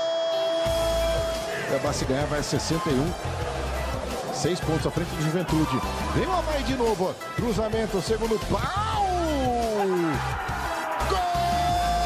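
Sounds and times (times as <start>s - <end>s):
background music with bass line: 0.3s - 12.0s.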